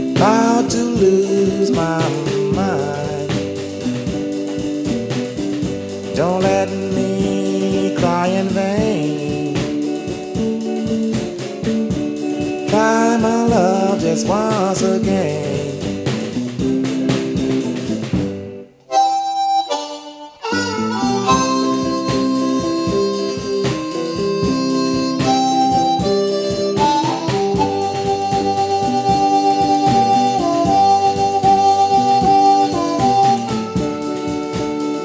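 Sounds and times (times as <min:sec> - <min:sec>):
blues harmonica solo: 0:00.0 - 0:35.0
slow band beat: 0:00.0 - 0:35.0.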